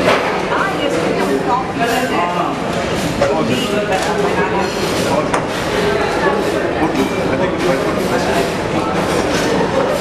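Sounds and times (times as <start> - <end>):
dishes and cutlery clinking: 0.0 - 10.0
many people talking: 0.0 - 10.0.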